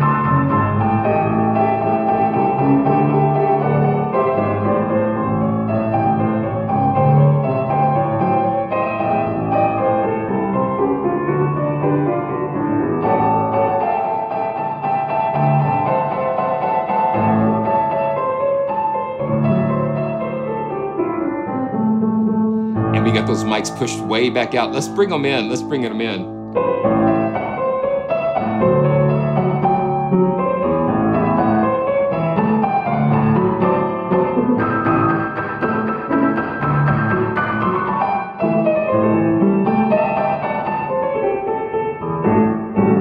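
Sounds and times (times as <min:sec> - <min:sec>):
muffled piano chords: 0:00.0 - 0:43.0.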